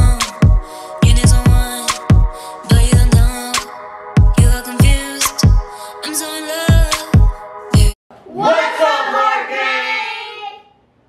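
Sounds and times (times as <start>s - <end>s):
family calling out in sing-song: 8.3s - 10.7s.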